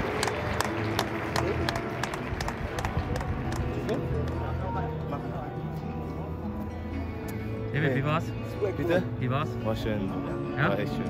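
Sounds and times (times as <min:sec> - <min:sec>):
sparse hand clapping: 0:00.0 - 0:04.5.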